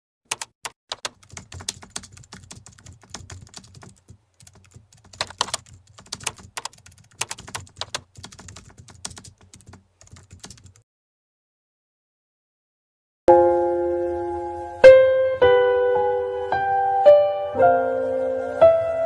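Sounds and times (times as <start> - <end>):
keyboard key clicks: 0.3 - 10.8.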